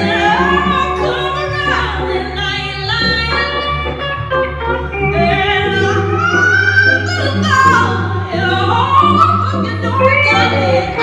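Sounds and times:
woman singing into microphone: 0.0 - 4.1, 4.9 - 11.0.

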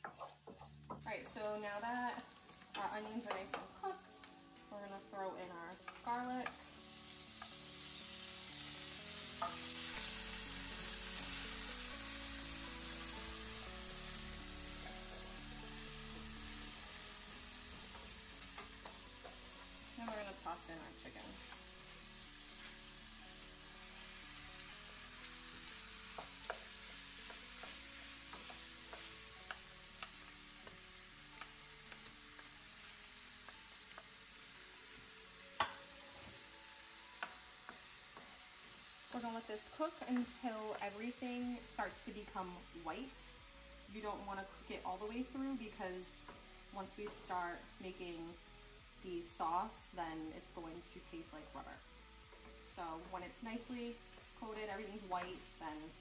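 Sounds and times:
food sizzling in a pan: 0.0 - 56.0.

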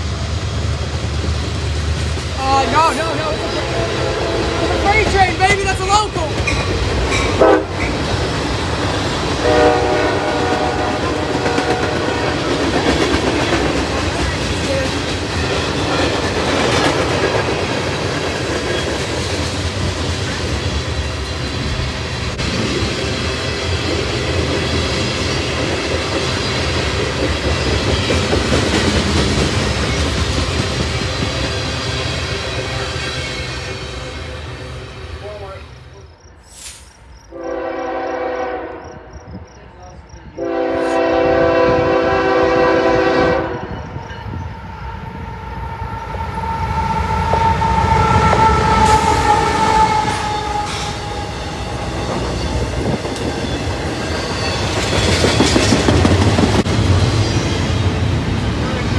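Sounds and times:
freight train rolling past: 0.0 - 58.9
train horn: 2.5 - 5.1, 7.3 - 7.8, 9.4 - 12.6, 37.3 - 39.1, 40.3 - 44.0, 44.6 - 52.4.

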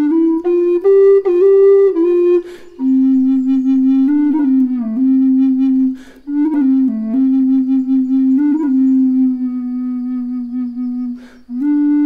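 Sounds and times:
low wooden flute notes: 0.0 - 12.0
short breath: 2.4 - 2.8, 5.9 - 6.3, 11.2 - 11.5.

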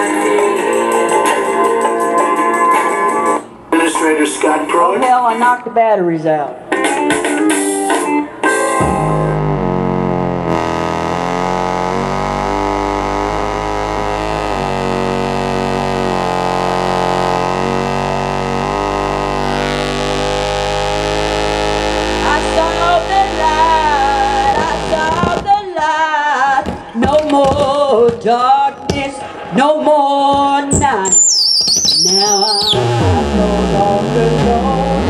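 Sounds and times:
electronic backing music: 0.0 - 5.3, 6.6 - 25.5, 28.6 - 35.0
woman singing: 22.2 - 31.3, 32.0 - 35.0.

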